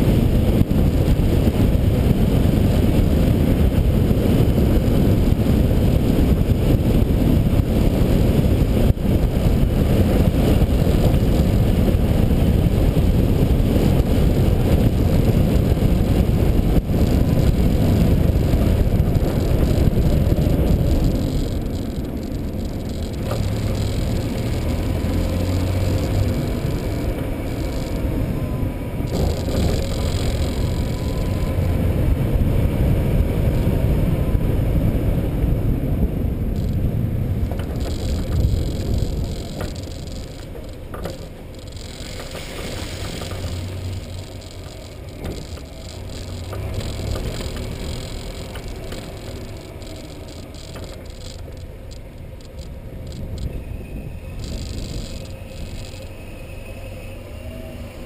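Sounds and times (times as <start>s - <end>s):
vehicle rumbling over road: 0.0s - 58.0s
short rattles and knocks: 16.9s - 28.1s, 36.6s - 53.5s.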